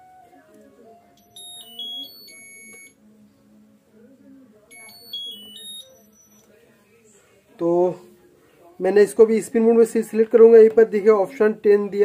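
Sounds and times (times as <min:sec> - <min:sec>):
washing machine beep tunes: 0:00.9 - 0:03.0, 0:04.7 - 0:06.5.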